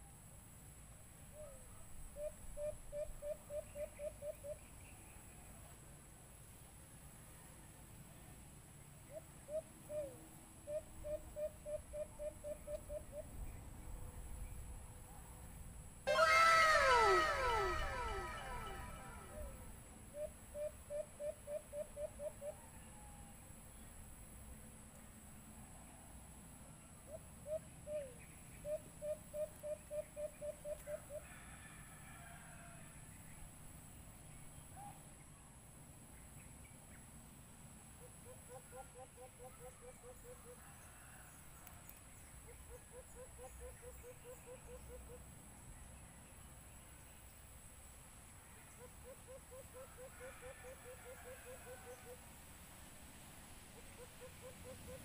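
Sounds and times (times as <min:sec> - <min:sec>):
loud falling bird calls: 0:16.1 - 0:19.6
dove hooting calls: 0:16.1 - 0:22.7, 0:42.5 - 0:45.2, 0:48.8 - 0:52.2, 0:53.8 - 0:55.0.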